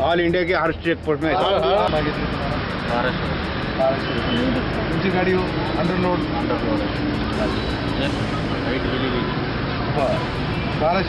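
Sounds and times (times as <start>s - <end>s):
truck and road traffic rumble: 0.0s - 11.0s.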